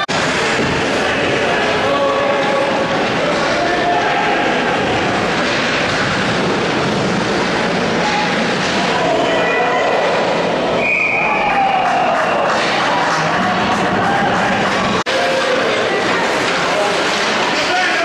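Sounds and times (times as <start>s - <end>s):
ice rink hall hum: 0.0s - 18.0s
spectators' voices: 0.0s - 18.0s
short high whistle: 10.8s - 11.5s.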